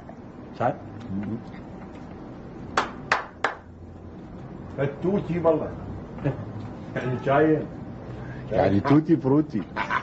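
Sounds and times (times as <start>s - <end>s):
sharp hand claps: 2.7s - 3.7s.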